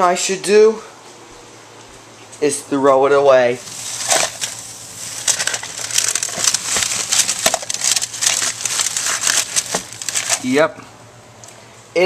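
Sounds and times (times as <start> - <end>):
plastic crinkling and crackling: 3.6 - 10.6.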